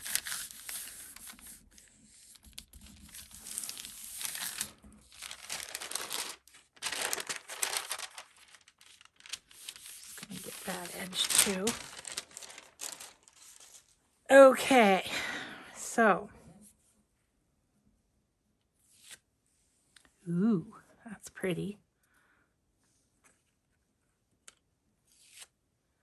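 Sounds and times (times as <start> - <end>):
thin paper rustling: 0.0 - 14.0
woman's voice: 10.3 - 11.9, 14.3 - 16.4, 20.3 - 21.8.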